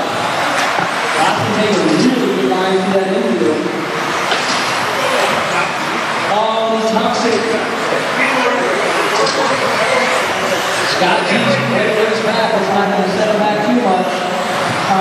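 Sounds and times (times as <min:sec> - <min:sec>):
model cars running: 0:00.2 - 0:11.3
announcer over public address: 0:11.0 - 0:14.0.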